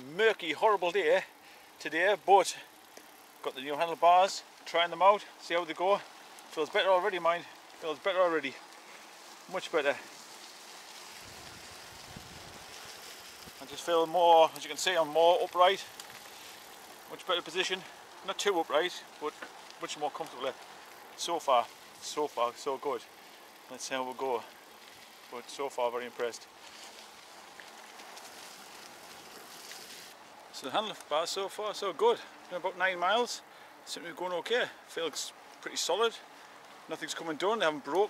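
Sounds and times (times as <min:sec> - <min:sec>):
bike tyres rolling on mud: 0:00.0 - 0:38.0
faint small clicks: 0:02.9 - 0:03.2
wind rumble on microphone: 0:11.1 - 0:13.6.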